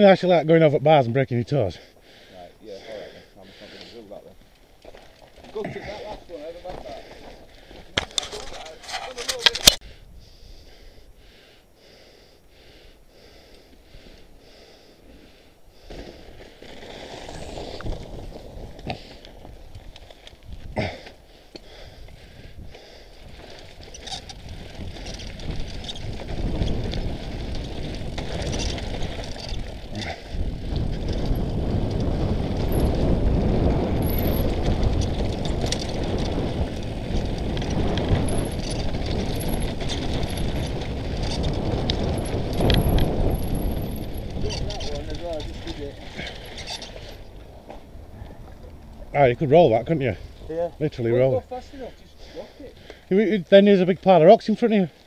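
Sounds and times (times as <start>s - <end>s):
bike rattling: 4.1s - 9.8s, 13.2s - 55.0s
tyres crunching over stones: 4.3s - 9.8s, 15.8s - 21.7s, 23.2s - 53.0s
wind on microphone: 21.7s - 49.4s.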